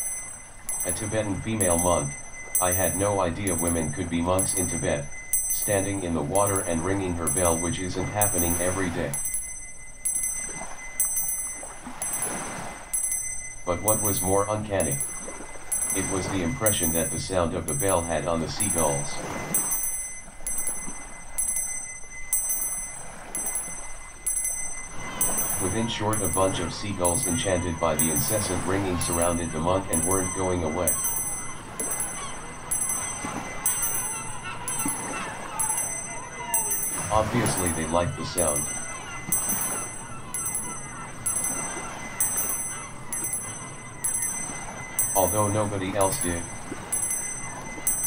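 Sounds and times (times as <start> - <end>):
hand bell ringing: 0.0 - 18.8, 19.4 - 48.0
surf washing: 0.0 - 48.0.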